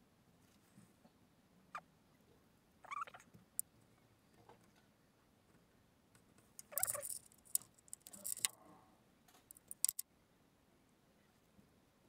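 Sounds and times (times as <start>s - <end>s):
wire and metal parts handled: 6.6s - 8.6s, 9.3s - 10.0s
sharp little clicks and taps: 9.3s - 10.0s.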